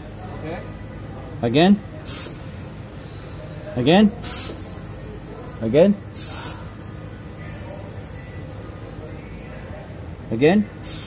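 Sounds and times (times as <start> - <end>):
compressed air hiss: 2.0 - 2.7, 4.2 - 5.0, 6.1 - 7.1.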